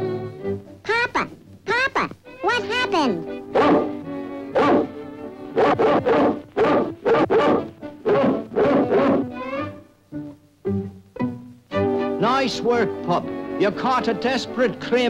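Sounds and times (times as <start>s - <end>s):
orchestral soundtrack music: 2.2s - 15.0s
cartoon dog barking: 3.5s - 9.4s.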